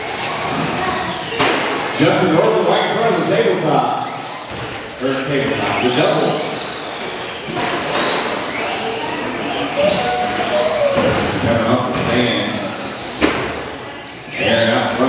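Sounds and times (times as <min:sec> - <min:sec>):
electric rc truck motors whining: 0:04.0 - 0:15.0.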